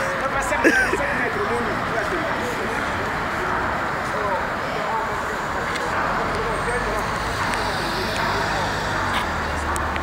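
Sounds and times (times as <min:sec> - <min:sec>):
chatter of passers-by: 0:00.0 - 0:10.0.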